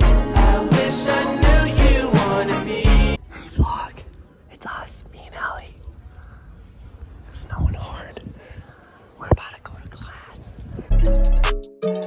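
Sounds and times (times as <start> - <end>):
person whispering: 3.3 - 5.9, 7.3 - 8.4, 9.2 - 10.6.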